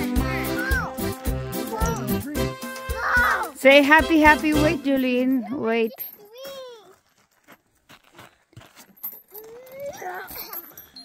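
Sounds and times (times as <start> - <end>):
high-pitched vocal cries: 0.1 - 1.0, 9.3 - 10.8.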